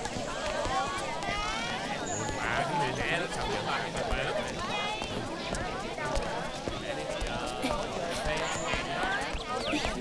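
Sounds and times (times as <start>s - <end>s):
footsteps on a paved path: 0.0s - 10.0s
voices chattering: 0.0s - 10.0s.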